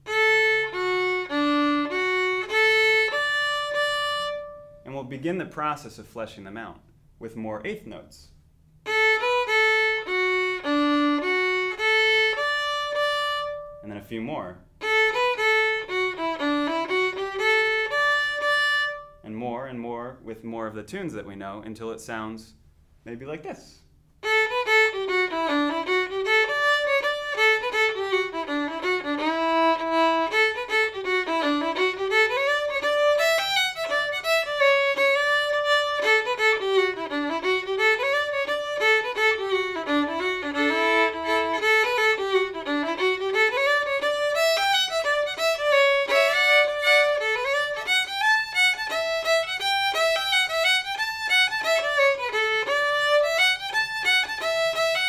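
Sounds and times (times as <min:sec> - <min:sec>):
solo fiddle tune: 0:00.0 - 0:05.0, 0:08.8 - 0:14.0, 0:14.8 - 0:19.2, 0:24.2 - 0:55.0.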